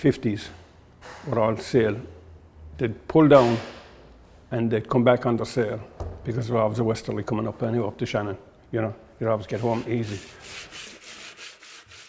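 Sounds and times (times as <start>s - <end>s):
hand sanding wood: 9.4s - 12.0s.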